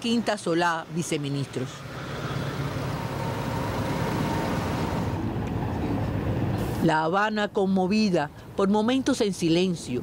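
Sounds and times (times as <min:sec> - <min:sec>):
jeep engines rumbling: 0:00.0 - 0:06.8
street noise: 0:00.0 - 0:10.0.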